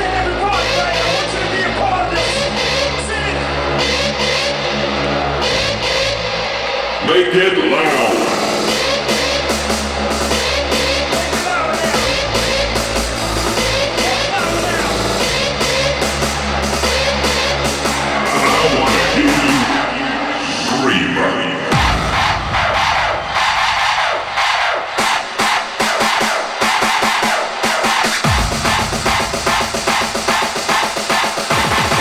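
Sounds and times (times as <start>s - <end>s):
loud hardstyle dance music: 0.0s - 32.0s
voice over music: 7.0s - 9.1s, 13.6s - 16.0s, 17.2s - 22.1s.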